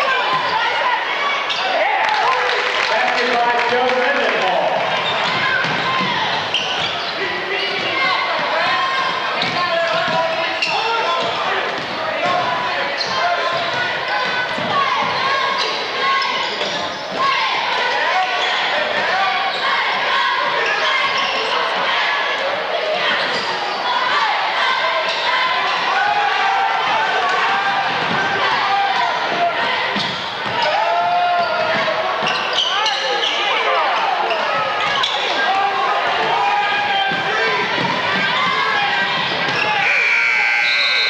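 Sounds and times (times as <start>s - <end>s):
crowd voices and shouts: 0.0s - 41.0s.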